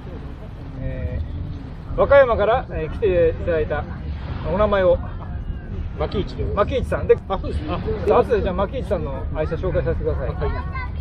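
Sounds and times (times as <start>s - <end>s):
faint voices: 0.0s - 11.0s
low outdoor rumble: 0.0s - 11.0s.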